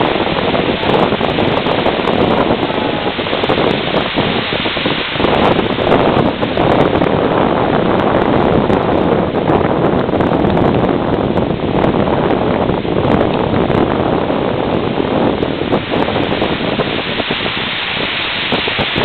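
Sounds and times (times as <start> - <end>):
ocean surf breaking: 0.0 - 10.2, 11.2 - 19.0
wind buffeting microphone: 0.0 - 19.0.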